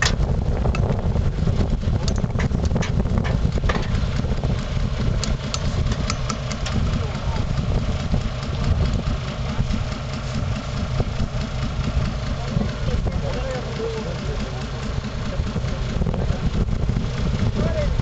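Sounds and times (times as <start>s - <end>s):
truck engine idling: 0.0s - 18.0s.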